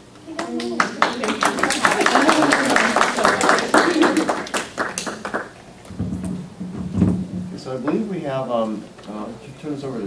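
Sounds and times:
people applauding: 0:00.3 - 0:05.6.

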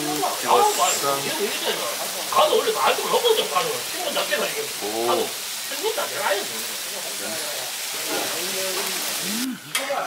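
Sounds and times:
beef sizzling on a griddle: 0:00.0 - 0:10.0
short voiced sound from person: 0:09.2 - 0:09.7.

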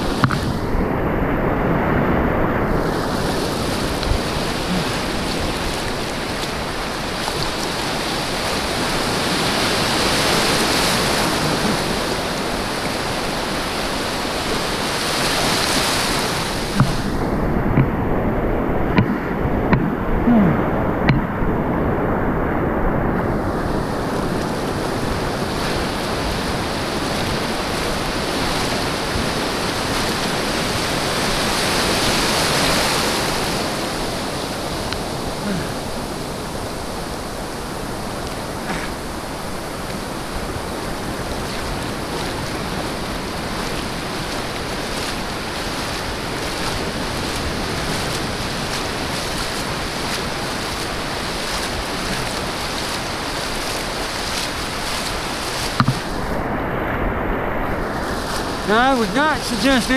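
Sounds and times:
ocean surf breaking: 0:00.0 - 0:59.9
sharp knocks: 0:55.8 - 0:56.0.

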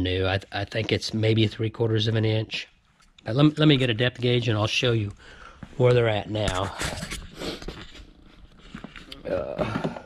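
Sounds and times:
footsteps on concrete floor: 0:05.6 - 0:05.8.

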